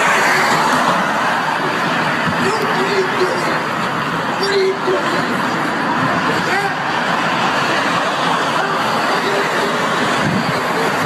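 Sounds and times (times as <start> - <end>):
faint voices: 0.0 - 11.0
traffic and crowd noise: 0.0 - 11.0.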